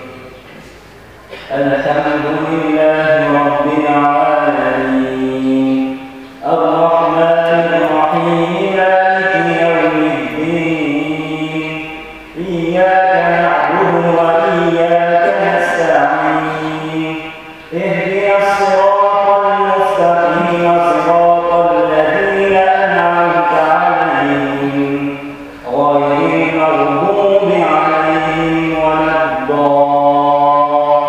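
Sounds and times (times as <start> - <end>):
man chanting recitation: 0.0 - 31.0.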